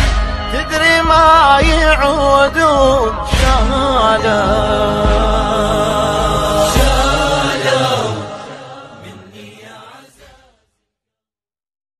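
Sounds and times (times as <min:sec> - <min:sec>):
person singing a lament: 0:00.4 - 0:10.5.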